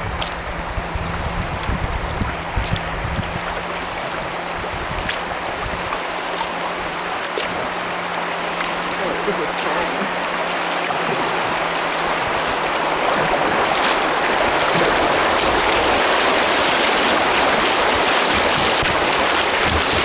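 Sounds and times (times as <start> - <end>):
water rushing and splashing: 0.0 - 20.0.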